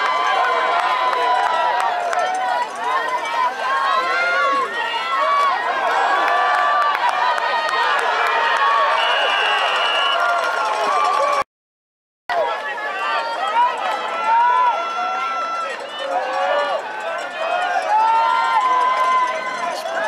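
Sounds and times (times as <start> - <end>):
crowd chatter: 0.0 - 11.4, 12.3 - 20.0.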